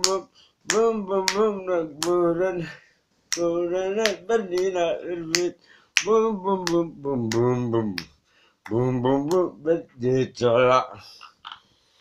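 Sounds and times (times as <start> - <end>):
finger snaps: 0.0 - 2.2, 5.3 - 9.5
man chanting vocal beat: 0.0 - 11.3.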